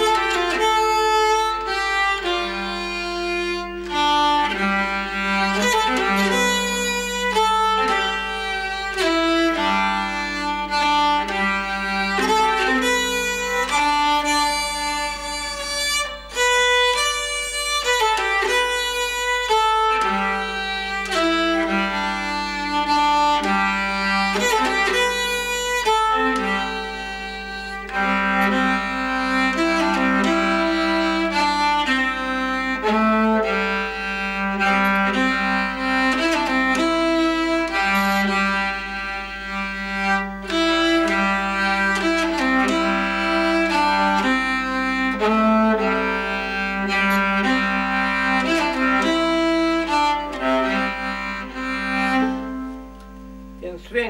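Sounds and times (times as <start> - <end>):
bowed keyed fiddle folk tune: 0.0 - 54.0.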